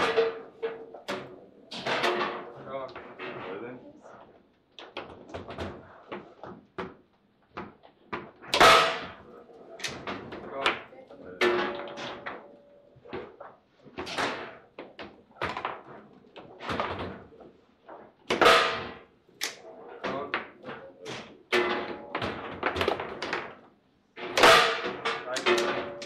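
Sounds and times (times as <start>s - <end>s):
foosball ball knocks and clacks: 0.0s - 3.4s, 4.3s - 26.0s.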